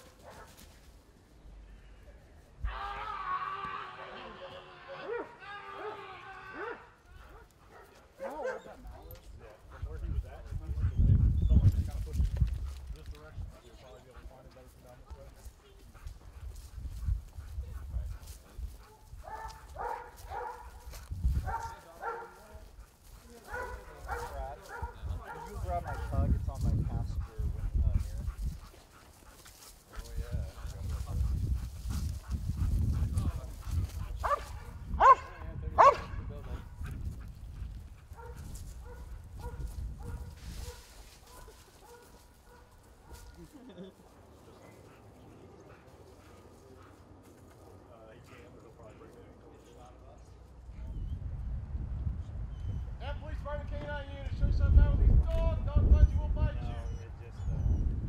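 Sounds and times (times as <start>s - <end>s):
dog barking sharply: 6.6s - 8.7s, 18.9s - 20.8s, 21.5s - 22.4s, 23.5s - 26.1s, 34.2s - 36.2s, 38.2s - 42.7s.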